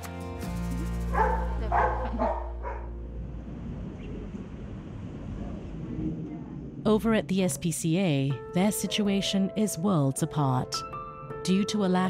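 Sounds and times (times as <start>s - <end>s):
outdoor background: 0.0s - 8.1s
dog barking: 1.1s - 2.9s.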